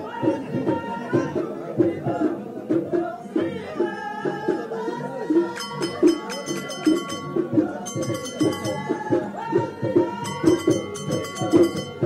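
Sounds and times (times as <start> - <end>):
drum hits: 5.4 - 12.0
metal percussion clanging: 5.5 - 12.0.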